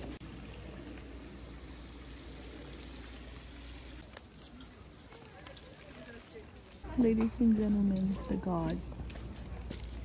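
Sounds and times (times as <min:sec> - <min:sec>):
even hiss: 0:00.0 - 0:07.4.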